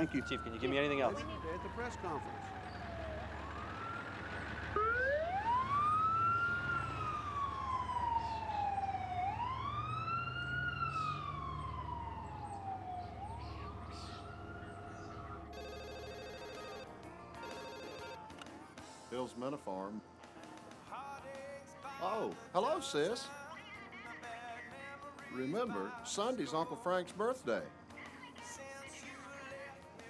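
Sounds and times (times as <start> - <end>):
emergency vehicle siren wailing: 0.0 - 18.8
telephone ringing: 15.5 - 18.2.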